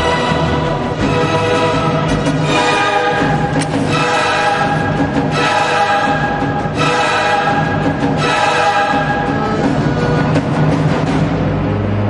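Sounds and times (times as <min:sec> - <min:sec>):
choir singing held chords: 0:00.0 - 0:11.4
orchestral music: 0:00.0 - 0:12.0.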